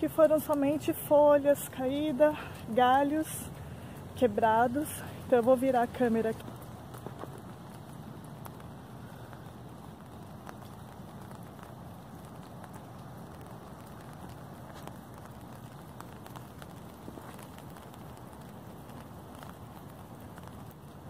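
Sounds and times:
footsteps on wet pavement: 0:00.0 - 0:21.0
light rain: 0:00.0 - 0:21.0
raindrops hitting an umbrella: 0:00.0 - 0:21.0.

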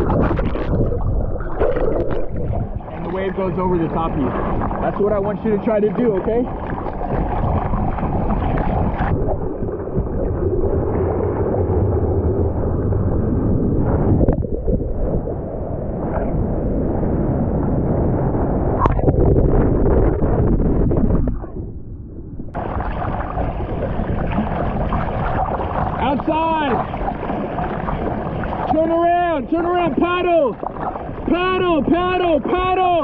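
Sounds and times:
ocean surf churning and splashing: 0:00.0 - 0:33.0.

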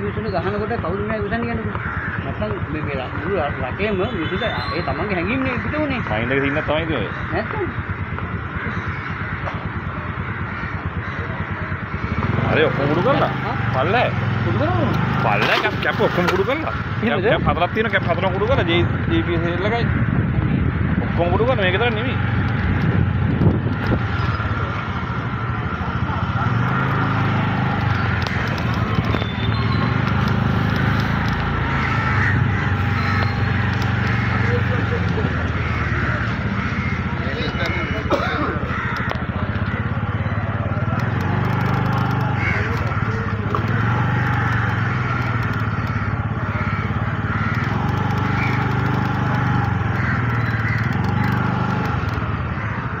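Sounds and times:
indistinct voices: 0:00.0 - 0:53.0
low street rumble: 0:00.0 - 0:53.0
motorcycle engine running: 0:00.0 - 0:53.0.

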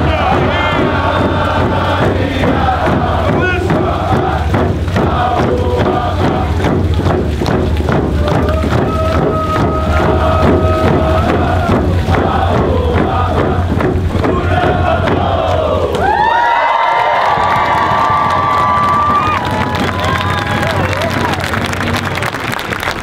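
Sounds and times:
group singing: 0:00.0 - 0:06.9, 0:08.2 - 0:16.0
hand drums beating: 0:00.0 - 0:16.3, 0:17.0 - 0:22.1
crowd whooping and cheering: 0:07.8 - 0:11.9, 0:15.4 - 0:23.0.

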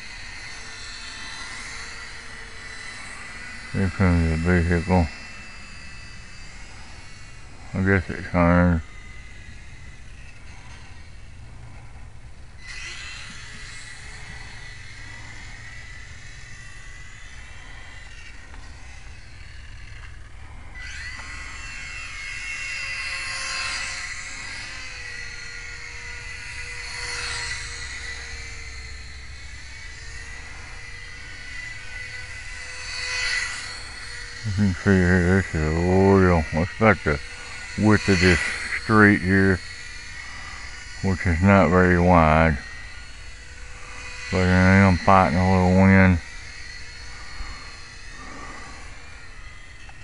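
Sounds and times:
model airplane motor whine: 0:00.0 - 0:50.0.

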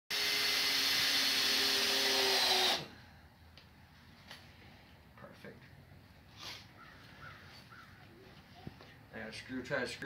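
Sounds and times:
faint bird chirps: 0:06.7 - 0:08.4.

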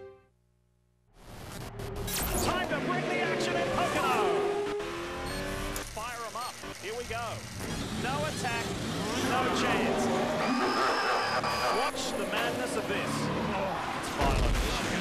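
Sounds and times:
race car engines revving: 0:01.6 - 0:15.0
voice: 0:02.4 - 0:04.4, 0:05.9 - 0:07.4, 0:08.0 - 0:10.2, 0:11.6 - 0:15.0.

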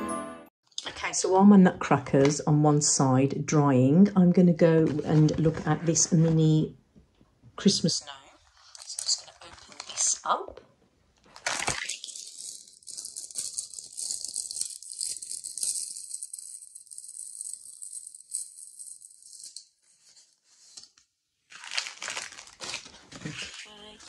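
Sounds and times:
plastic packaging crinkling: 0:08.6 - 0:10.3, 0:11.2 - 0:24.0.

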